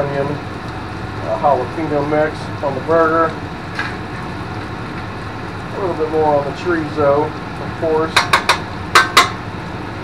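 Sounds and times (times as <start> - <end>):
metal spatula knocking on griddle: 8.1 - 9.4.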